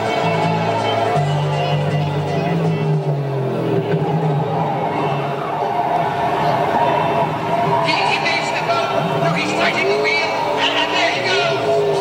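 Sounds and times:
car engine running: 0.0 - 12.0.

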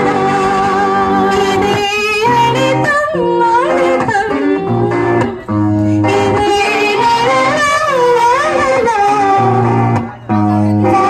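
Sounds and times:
electric guitar: 0.0 - 11.0
woman singing into a microphone: 0.0 - 11.0.

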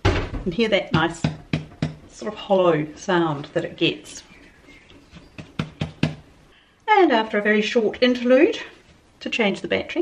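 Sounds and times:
hands patting dough: 4.7 - 6.3.

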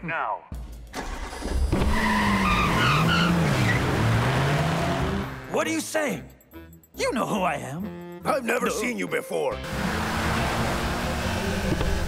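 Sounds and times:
car engine revving: 1.0 - 5.5, 9.6 - 12.0
tires squealing: 1.4 - 5.2, 9.6 - 12.0.

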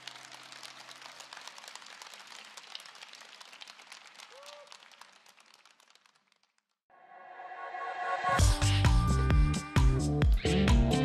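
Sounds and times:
audience applauding: 0.0 - 6.7.

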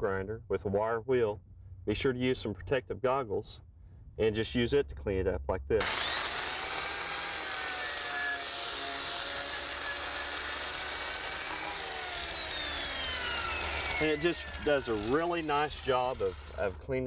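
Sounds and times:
angle grinder motor whine: 5.8 - 16.9
wire wheel scrubbing metal: 5.8 - 17.0.

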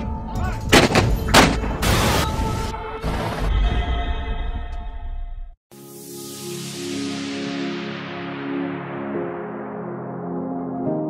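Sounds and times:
loud gunshot-like bangs: 0.7 - 2.2.

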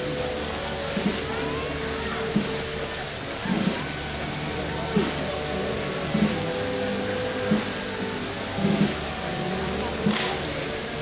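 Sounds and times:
band playing slow march: 0.0 - 11.0.

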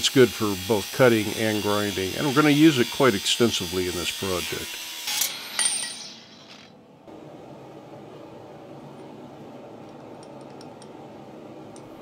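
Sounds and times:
angle grinder cutting steel: 0.0 - 6.7
high metallic ring: 5.2 - 6.5
steady low hum: 6.7 - 12.0.

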